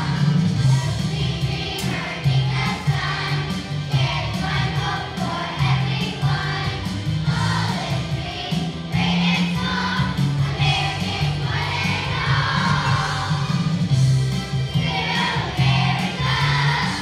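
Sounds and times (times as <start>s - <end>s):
children's choir singing: 0.0s - 17.0s
instrumental accompaniment with bass: 0.0s - 17.0s.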